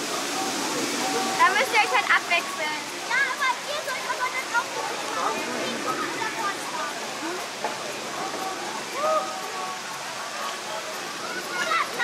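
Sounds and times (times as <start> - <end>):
people talking: 0.1 - 12.0.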